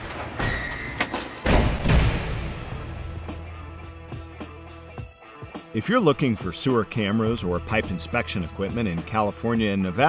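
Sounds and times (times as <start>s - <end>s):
heavy booming impact hits: 1.5s - 3.2s.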